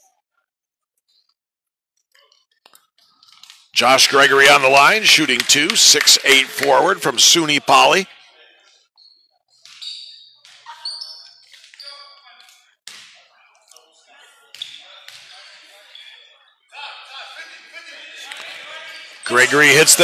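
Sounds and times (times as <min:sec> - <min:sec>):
voices echoing in hall: 0:03.2 - 0:20.0.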